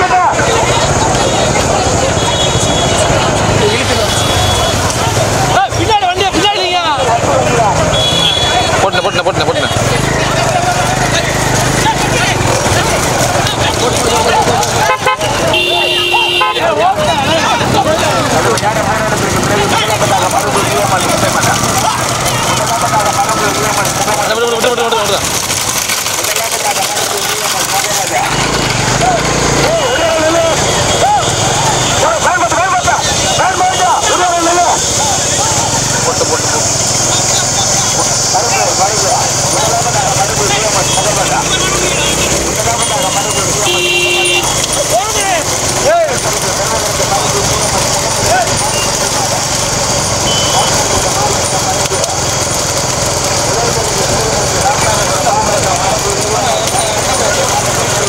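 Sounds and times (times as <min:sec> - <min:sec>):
motorbike engines: 0:00.0 - 0:58.0
men shouting: 0:03.0 - 0:25.0, 0:27.1 - 0:49.0
short beep: 0:50.2 - 0:50.7.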